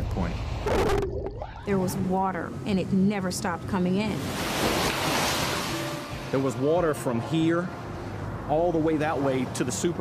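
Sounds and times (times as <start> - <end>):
floodwater rushing: 4.1 - 7.5.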